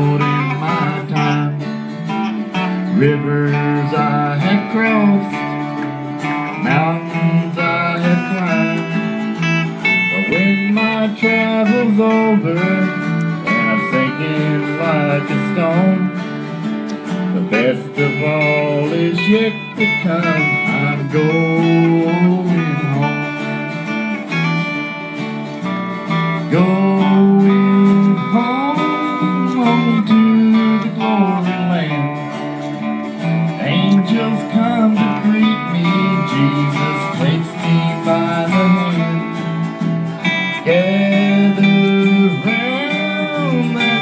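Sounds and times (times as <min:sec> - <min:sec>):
acoustic guitars strumming: 0:00.0 - 0:44.0
bass guitar: 0:00.0 - 0:44.0
sliding lead guitar line: 0:00.0 - 0:44.0.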